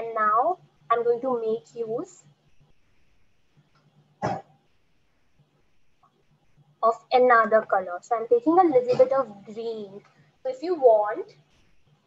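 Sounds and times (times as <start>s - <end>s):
faint low room hum: 0.0s - 12.0s
short cough: 4.2s - 4.6s.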